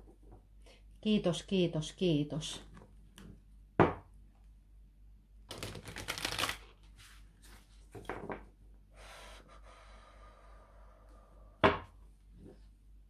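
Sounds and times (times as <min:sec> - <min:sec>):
deck knocking on wooden table: 0:03.8 - 0:04.1
cards riffle-shuffled: 0:05.5 - 0:06.8
cards rustling: 0:05.5 - 0:06.8.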